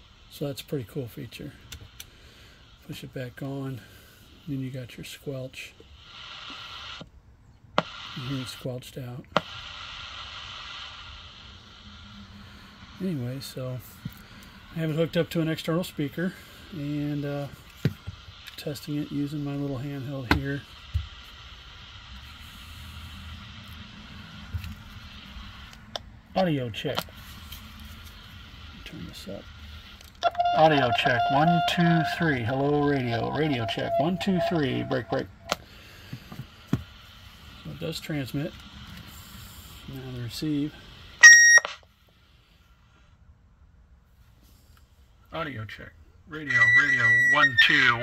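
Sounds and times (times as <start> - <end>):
faint steady hiss: 0.0 - 48.0
low hum: 9.6 - 36.0
high-pitched feedback squeal: 30.2 - 35.6, 41.2 - 41.6, 46.4 - 48.0.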